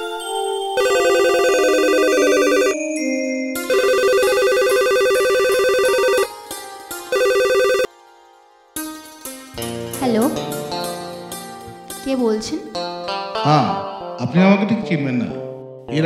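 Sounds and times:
phone ringtone warbling trill: 0.8s - 2.8s, 3.6s - 6.3s, 7.1s - 7.9s.

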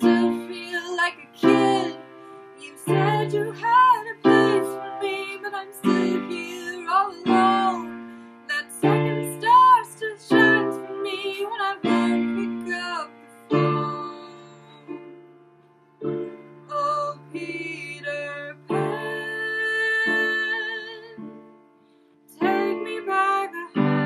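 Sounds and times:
person singing: 0.0s - 15.1s, 16.1s - 21.5s, 22.3s - 24.0s
piano chords: 0.0s - 24.0s.

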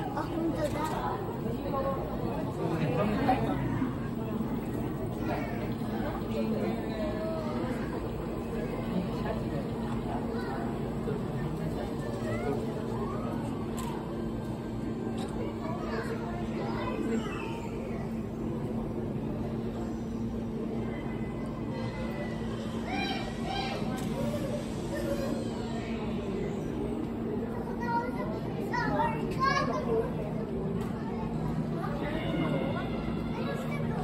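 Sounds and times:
indistinct chatter of people: 0.0s - 34.0s
low mechanical hum: 0.0s - 34.0s
children calling out: 15.6s - 18.2s, 20.8s - 26.8s, 30.9s - 34.0s.

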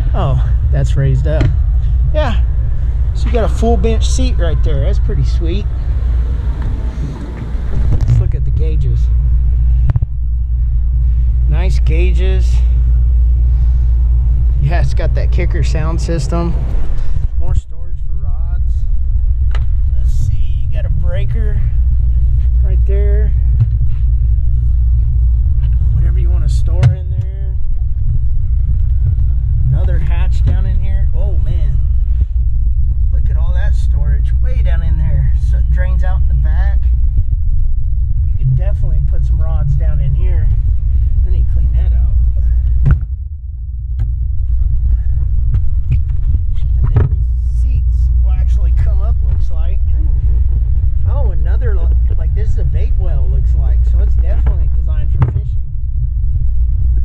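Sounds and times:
loud low rumble: 0.0s - 57.0s.

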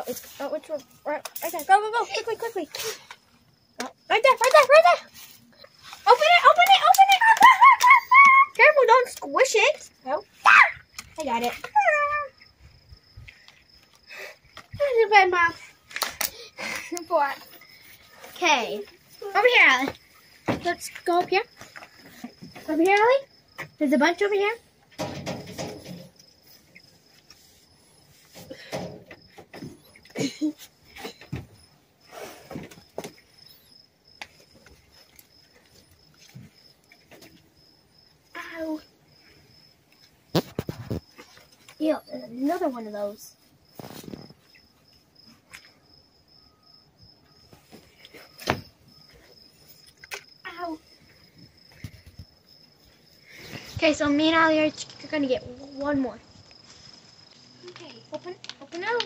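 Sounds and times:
low outdoor background: 0.0s - 59.0s
girl exclaiming: 6.1s - 9.1s, 10.1s - 10.9s, 11.6s - 12.4s
faint rustle: 25.3s - 37.5s, 38.3s - 45.8s, 47.4s - 58.7s.

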